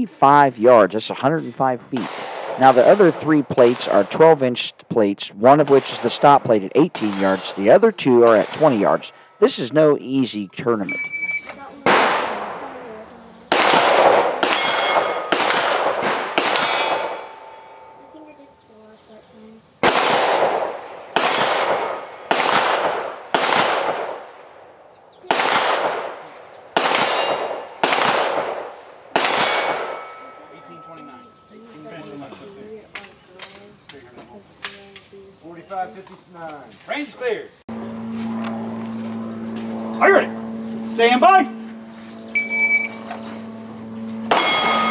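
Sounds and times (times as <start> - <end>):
pistol shots echoing: 1.9 - 4.4, 5.5 - 9.1, 13.5 - 17.5, 19.8 - 24.3, 25.3 - 30.3
steel targets ringing: 14.5 - 15.4, 29.3 - 31.6, 44.0 - 44.9.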